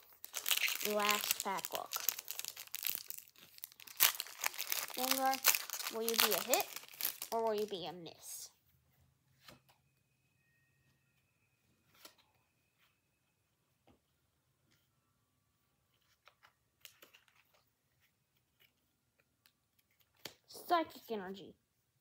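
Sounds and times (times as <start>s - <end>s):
trading cards rustling and clicking: 0.0s - 7.8s, 15.9s - 20.4s.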